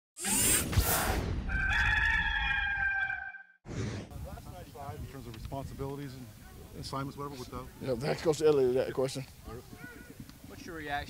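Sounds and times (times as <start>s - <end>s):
rooster crow: 1.5s - 3.5s.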